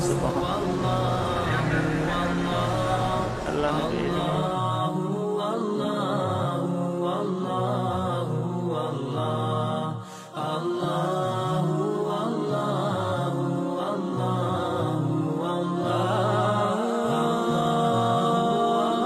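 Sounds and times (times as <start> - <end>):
voice chanting long held notes: 0.0 - 19.0.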